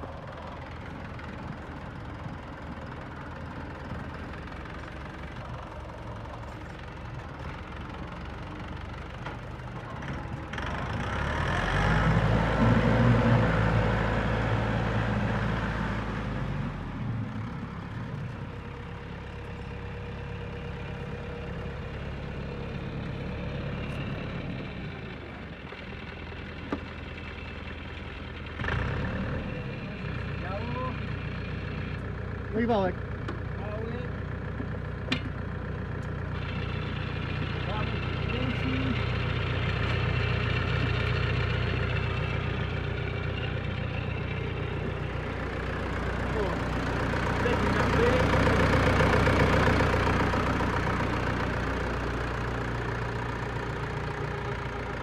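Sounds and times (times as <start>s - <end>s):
tractor diesel engine running: 0.0s - 55.0s.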